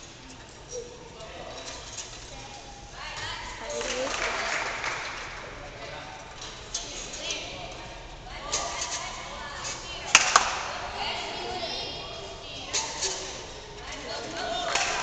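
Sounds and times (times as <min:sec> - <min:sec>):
voices in a hall: 0:00.0 - 0:15.0.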